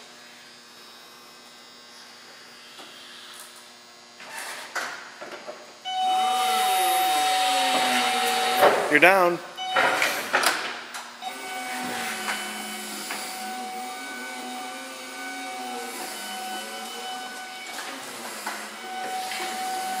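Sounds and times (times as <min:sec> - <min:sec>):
forklift engine whine: 0:05.8 - 0:20.0.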